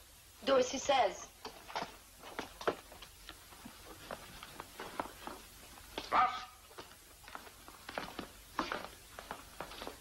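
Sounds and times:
footsteps on hard floor: 1.6 - 10.0.

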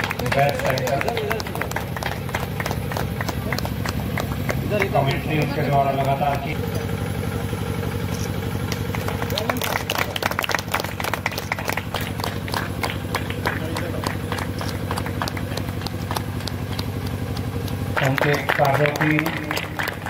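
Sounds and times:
low engine-like hum: 0.0 - 20.0.

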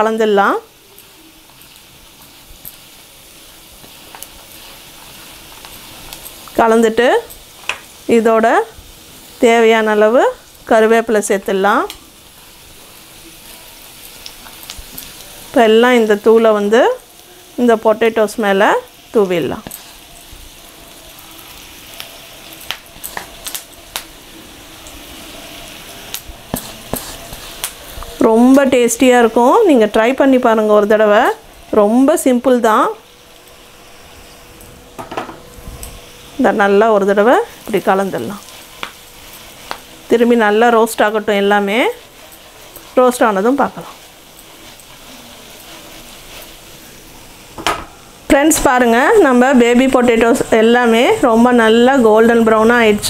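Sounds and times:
potatoes sizzling in oil: 0.0 - 53.0
faint crackles: 37.0 - 47.6.

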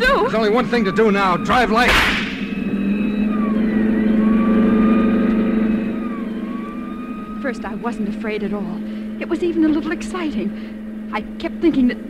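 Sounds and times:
car engine at speed: 0.0 - 12.0
police siren wailing: 0.0 - 12.0.

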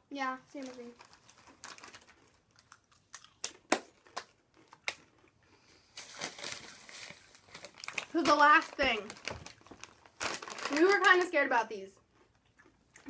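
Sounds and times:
plastic chip bags crackling: 0.5 - 12.3.

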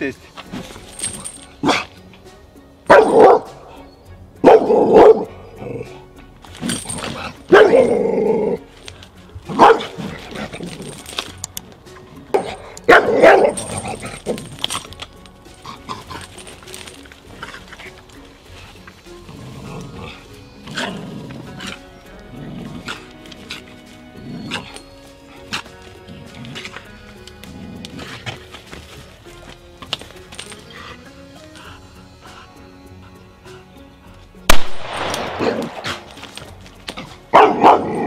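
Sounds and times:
background music: 0.0 - 38.0
dog barking: 2.9 - 3.8, 4.4 - 5.4, 7.5 - 7.9, 9.5 - 10.0, 12.4 - 14.1, 37.3 - 38.0.

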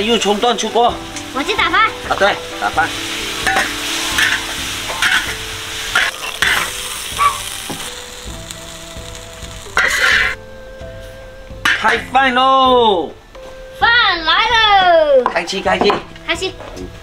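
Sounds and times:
food sizzling in a wok: 0.0 - 13.6
metal spatula scraping a pan: 3.3 - 7.5, 9.8 - 10.4.

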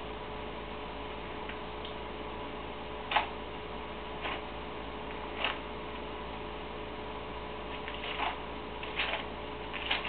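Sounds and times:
steady low hum: 0.0 - 10.0
thin pages being turned: 7.7 - 10.0.

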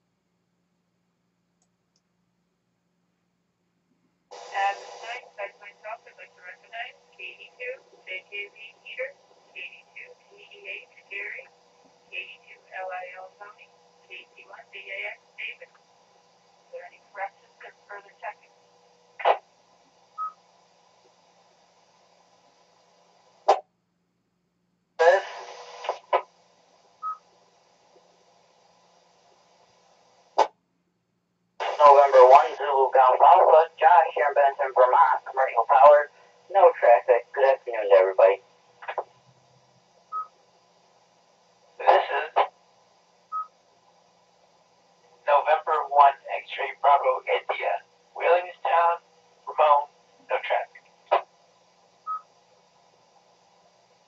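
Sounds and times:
faint steady hum: 0.0 - 54.0
burst of radio static: 4.3 - 11.5, 12.1 - 15.7, 19.2 - 19.5, 25.0 - 26.3, 31.6 - 39.1, 41.8 - 42.6, 45.3 - 51.3
unclear radio voices: 4.4 - 11.5, 12.1 - 15.7, 16.8 - 18.4, 25.0 - 26.2, 31.6 - 39.1, 41.8 - 42.5, 45.3 - 51.3.

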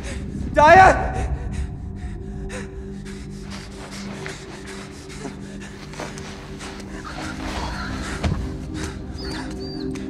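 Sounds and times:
low music drone: 0.0 - 10.0.

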